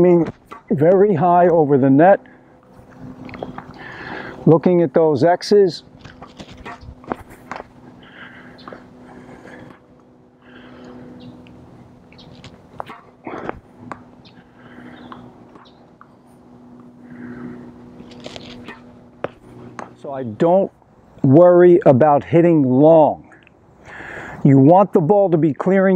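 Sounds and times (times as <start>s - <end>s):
steady low hum: 0.0s - 25.9s
racket hitting tennis ball: 0.2s - 0.7s, 12.5s - 14.2s, 18.5s - 20.0s.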